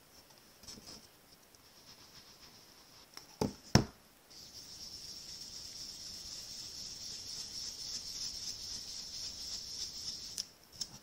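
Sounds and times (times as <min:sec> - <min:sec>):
brush bristles rubbing on paper: 0:01.6 - 0:03.1, 0:04.3 - 0:10.4.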